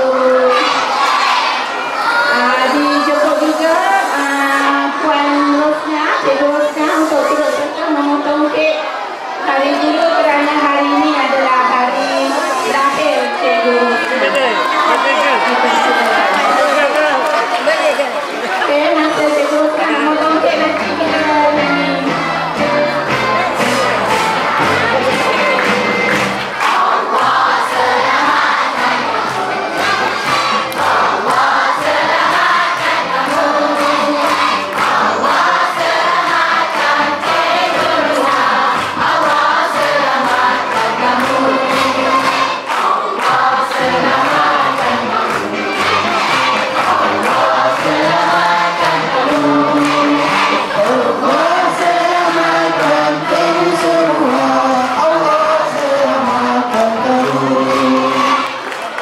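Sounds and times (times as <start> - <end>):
crowd singing as a choir: 0.0 - 59.0
hand clapping: 24.1 - 59.0.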